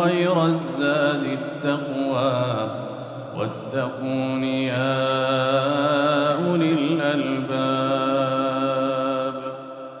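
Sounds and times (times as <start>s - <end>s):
melodic recitation by one voice: 0.0s - 10.0s.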